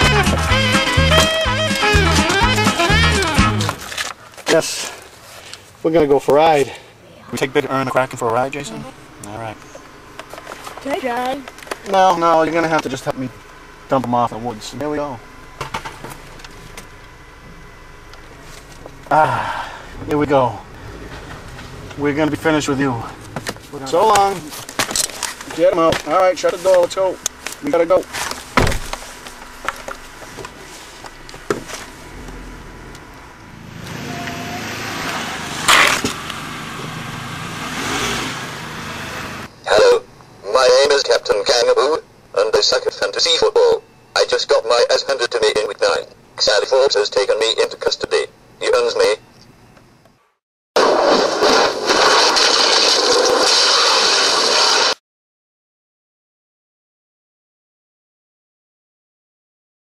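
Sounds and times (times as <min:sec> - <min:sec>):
car cabin engine noise: 0:00.0 - 0:50.1
person speaking: 0:05.9 - 0:09.8.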